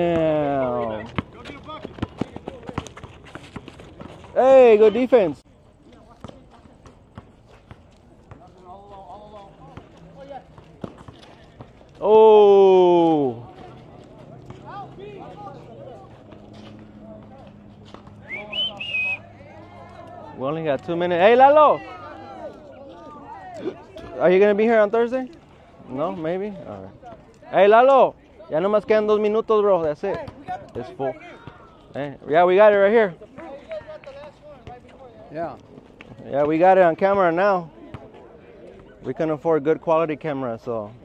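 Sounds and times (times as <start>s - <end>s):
players calling: 12.0s - 25.2s.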